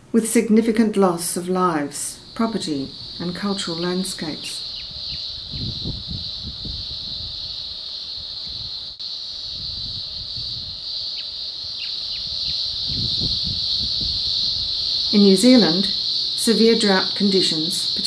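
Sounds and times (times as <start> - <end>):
insect chorus: 0.0 - 18.0.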